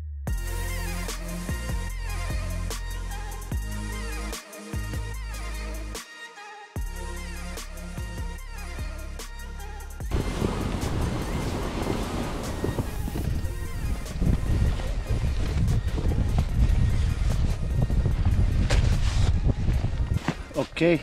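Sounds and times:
music: 0:00.0 - 0:21.0
wind buffeting microphone: 0:10.1 - 0:20.6
sled scraping over snowy ice: 0:10.1 - 0:20.8.

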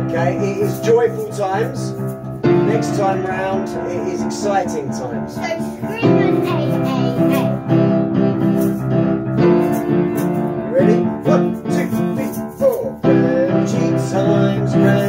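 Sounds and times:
upright piano chords: 0:00.0 - 0:15.0.

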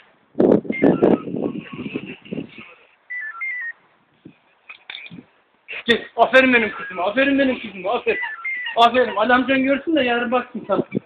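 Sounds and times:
electronic beeps: 0:00.8 - 0:01.4, 0:03.1 - 0:03.8, 0:08.1 - 0:08.9.

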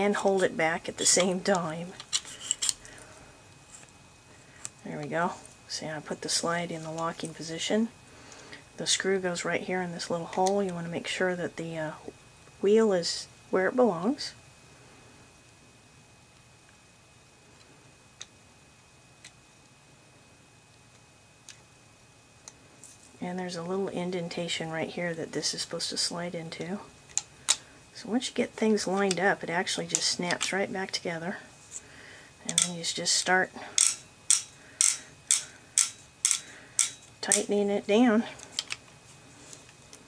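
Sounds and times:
low room noise: 0:00.0 - 0:40.0
pistol parts clicking: 0:33.8 - 0:37.4, 0:38.6 - 0:38.8.

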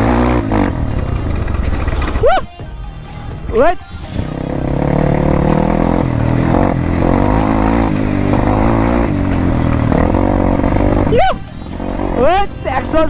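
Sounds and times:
dirt bike engine revving: 0:00.0 - 0:02.5, 0:03.4 - 0:13.0.

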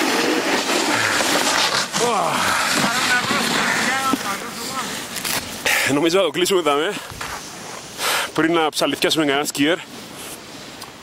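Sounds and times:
snowboards scraping over snow: 0:00.0 - 0:10.7.

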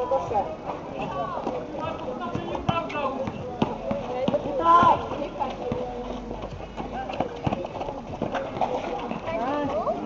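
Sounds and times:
players running on asphalt: 0:00.0 - 0:10.0
basketball bouncing: 0:02.3 - 0:06.0.

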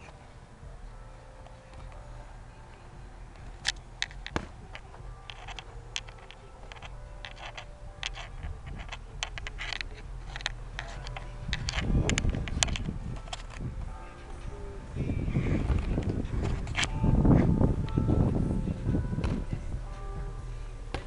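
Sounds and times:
boxing gloves slapping: 0:04.2 - 0:04.7
low rumble: 0:07.9 - 0:20.9.

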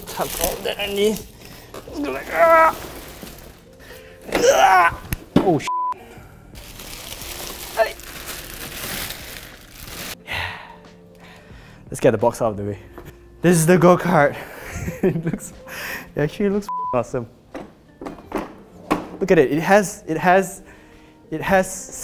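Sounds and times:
plastic wrap crinkling: 0:00.0 - 0:03.8, 0:06.6 - 0:10.2
short steady beep: 0:05.7 - 0:06.0, 0:16.7 - 0:17.0
man laughing: 0:14.4 - 0:15.6.

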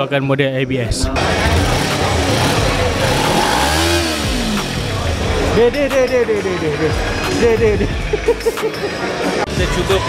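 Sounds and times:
motorcycle engine revving: 0:01.2 - 0:06.4.

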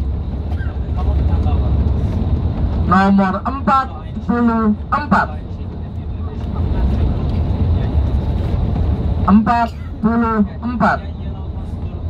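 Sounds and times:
engine and road noise in cabin: 0:00.0 - 0:12.0.

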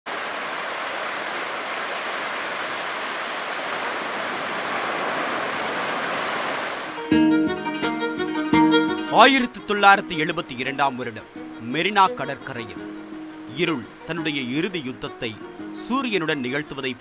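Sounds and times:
sea surf rushing: 0:00.1 - 0:07.1, 0:09.0 - 0:17.0
music with ringing notes: 0:07.0 - 0:17.0.

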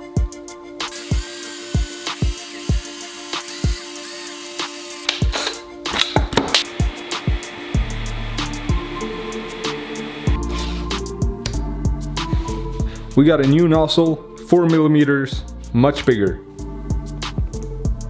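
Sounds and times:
background music with steady beat: 0:00.0 - 0:18.0
cordless drill running: 0:00.9 - 0:05.1, 0:06.6 - 0:10.4.

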